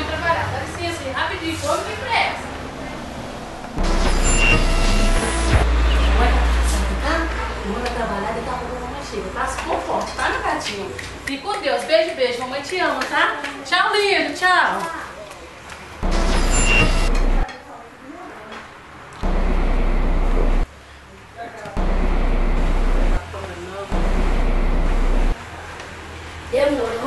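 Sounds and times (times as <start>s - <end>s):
loud low rumble: 3.4s - 5.7s, 16.0s - 17.4s, 19.2s - 20.7s, 21.8s - 23.2s, 23.9s - 25.4s
brief high whine: 3.8s - 6.0s, 16.0s - 17.4s, 19.2s - 20.6s.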